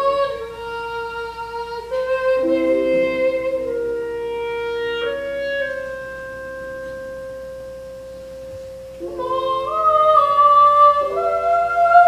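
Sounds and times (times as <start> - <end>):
woodwind holding long note: 0.0 - 12.0.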